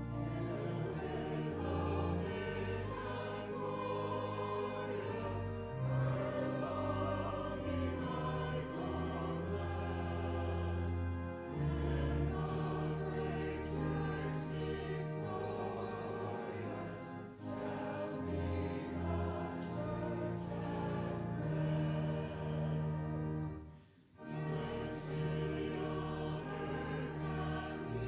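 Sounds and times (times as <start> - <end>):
held accompaniment chords: 0.0 - 28.0
voices singing a hymn: 0.0 - 28.0.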